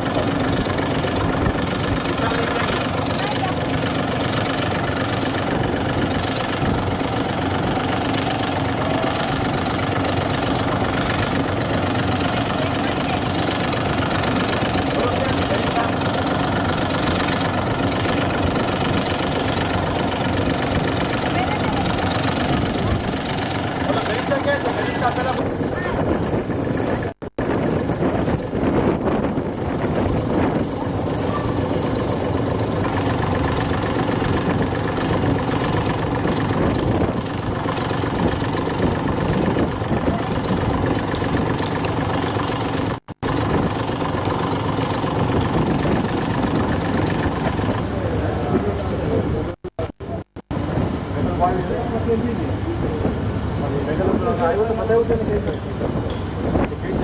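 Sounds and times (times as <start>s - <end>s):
engine idling: 0.0s - 57.0s.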